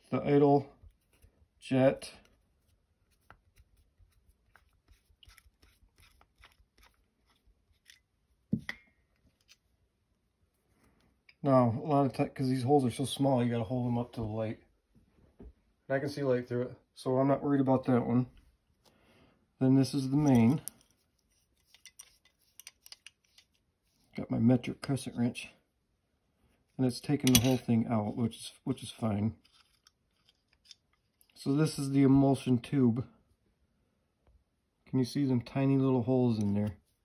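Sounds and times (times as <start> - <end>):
screwdriver ticks and metal scrapes: 20.1 - 23.7, 29.4 - 31.4.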